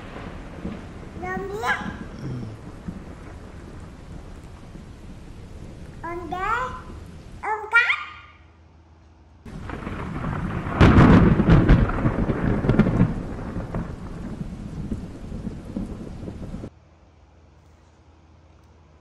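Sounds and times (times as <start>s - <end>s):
thunder rumble with cracks: 0.0s - 7.5s, 9.5s - 16.7s
rain: 0.0s - 8.6s, 9.5s - 16.7s.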